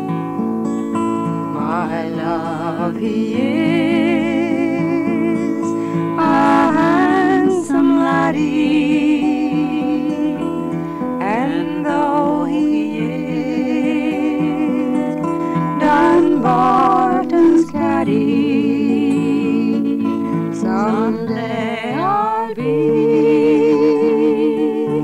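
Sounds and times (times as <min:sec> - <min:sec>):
acoustic guitar: 0:00.0 - 0:25.0
woman singing with vibrato: 0:01.5 - 0:25.0.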